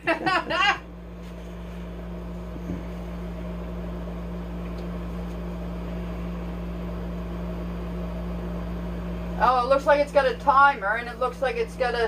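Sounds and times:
air conditioner humming and blowing: 0:00.0 - 0:12.0.

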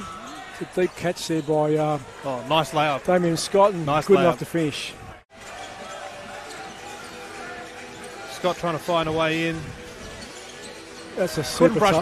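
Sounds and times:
arena crowd murmur: 0:00.0 - 0:12.0.

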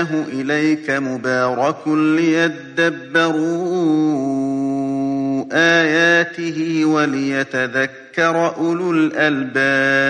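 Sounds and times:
man reciting melodically: 0:00.0 - 0:10.0.

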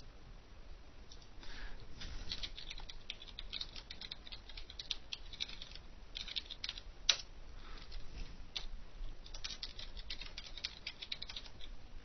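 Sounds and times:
computer keyboard typing: 0:02.3 - 0:07.2, 0:08.6 - 0:11.7.

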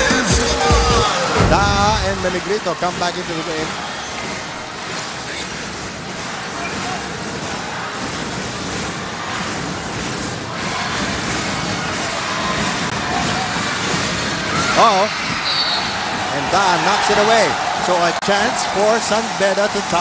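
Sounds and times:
crowd cheering: 0:00.0 - 0:20.0.

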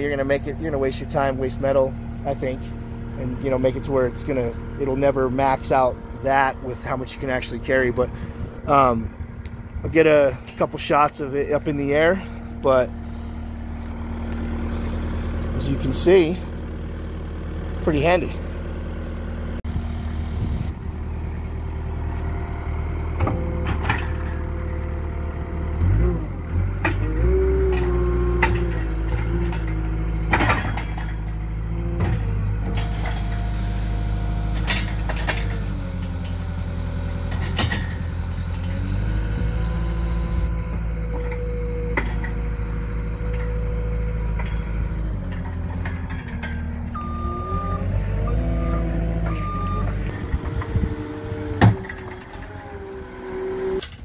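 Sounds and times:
diesel engine running: 0:00.0 - 0:54.0
hydraulics raising loader arms: 0:00.0 - 0:54.0
sharp metal clanks and knocks: 0:23.2 - 0:24.5, 0:27.7 - 0:31.4, 0:37.3 - 0:38.7, 0:44.3 - 0:46.9.

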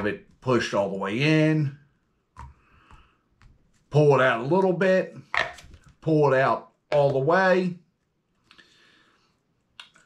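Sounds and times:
plastic tube rustling: 0:05.2 - 0:06.1.

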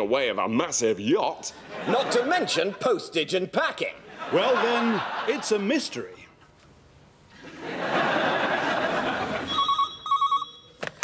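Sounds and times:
telephone ringing: 0:09.5 - 0:10.8.

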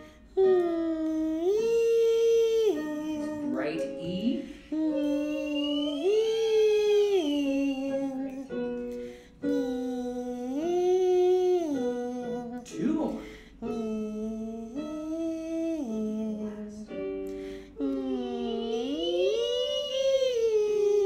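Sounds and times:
person humming vocal warm-up: 0:00.0 - 0:21.0.

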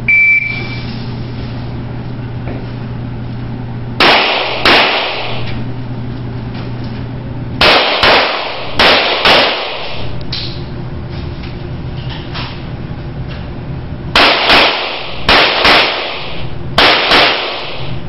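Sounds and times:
shot timer beep: 0:00.0 - 0:00.9
steady low hum: 0:00.0 - 0:18.0
pistol shots echoing indoors: 0:04.0 - 0:05.6, 0:07.6 - 0:10.1, 0:14.1 - 0:18.0.

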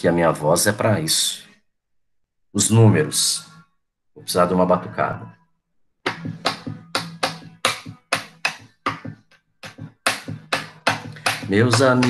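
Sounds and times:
hand slaps in syncopated rhythm: 0:06.0 - 0:12.0.

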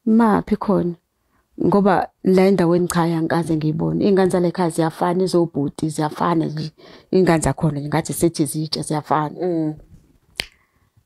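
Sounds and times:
woman speaking: 0:00.0 - 0:01.0, 0:01.6 - 0:09.8.

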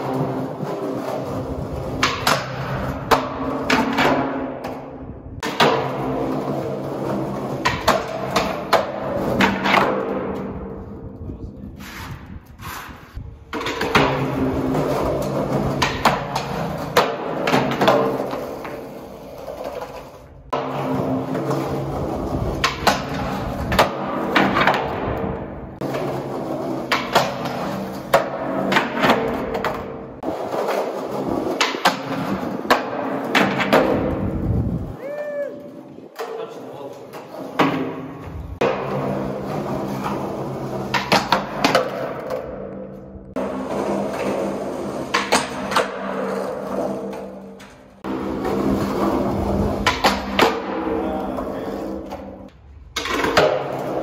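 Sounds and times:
skateboard clacking on floor: 0:00.0 - 0:10.8, 0:13.5 - 0:34.3, 0:35.6 - 0:54.0
skateboard wheels rolling on concrete: 0:00.0 - 0:54.0.

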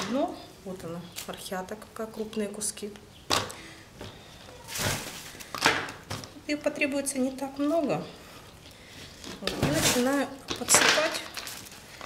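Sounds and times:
potting mix rustling in plastic pot: 0:04.5 - 0:12.0.

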